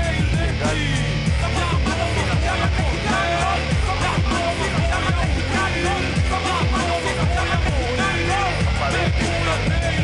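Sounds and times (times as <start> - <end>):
instrumental hip-hop beat: 0.0 - 10.0.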